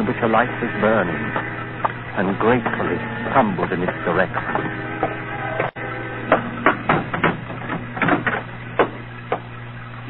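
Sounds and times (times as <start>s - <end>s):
low recording hum: 0.0s - 10.0s
knocks or thuds: 6.3s - 9.4s.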